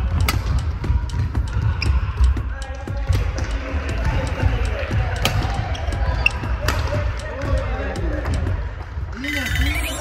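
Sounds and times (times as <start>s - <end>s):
racket striking shuttlecock: 0.1s - 2.4s, 4.8s - 5.6s, 6.4s - 7.5s.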